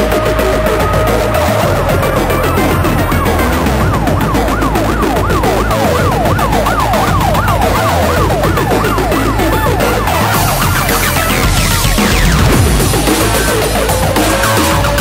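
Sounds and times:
hardcore electronic music: 0:00.0 - 0:15.0
siren-like wail: 0:00.0 - 0:15.0.

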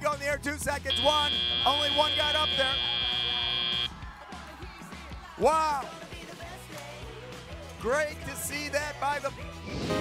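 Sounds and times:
arena background noise: 0:00.9 - 0:03.9
high-pitched electronic buzzer: 0:00.9 - 0:03.9.

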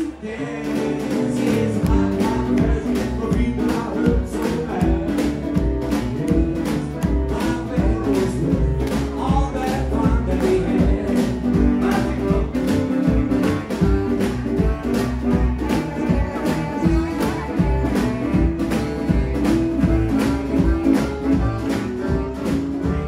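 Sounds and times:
drums: 0:00.0 - 0:23.0
guitar: 0:00.0 - 0:23.0
upright bass: 0:00.0 - 0:23.0.

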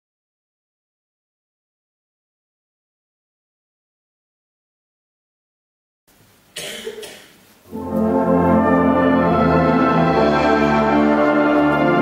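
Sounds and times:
faint hall ambience: 0:06.1 - 0:12.0
person coughing: 0:06.6 - 0:07.4.

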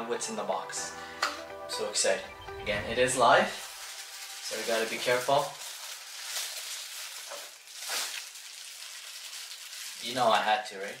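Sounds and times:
plastic bag rustling: 0:02.4 - 0:11.0.

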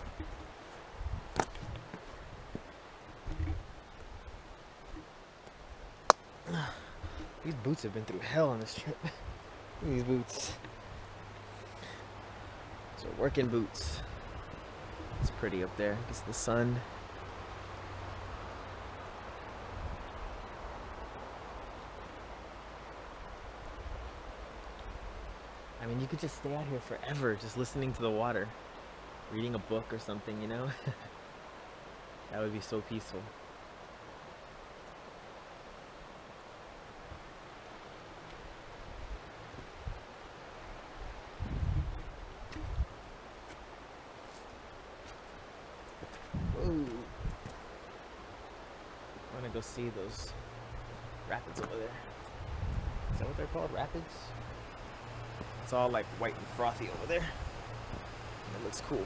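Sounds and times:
river flowing over rocks: 0:31.1 - 0:41.4, 0:42.1 - 0:52.4.

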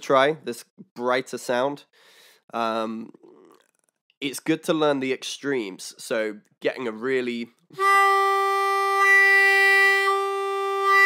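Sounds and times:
harmonica long note: 0:07.8 - 0:11.0.

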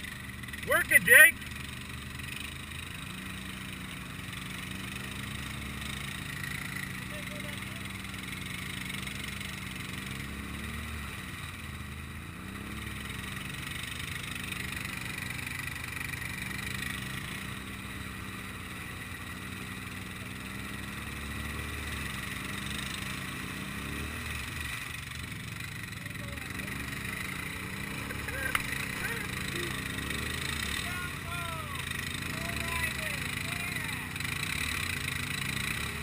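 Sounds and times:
engine idling: 0:00.0 - 0:10.0, 0:24.1 - 0:36.0.

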